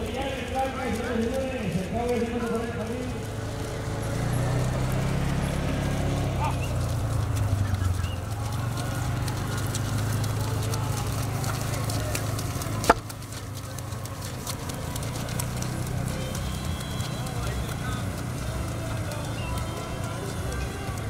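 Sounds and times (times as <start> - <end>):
background voices: 0.0 - 21.0
hoofbeats on muddy track: 0.0 - 21.0.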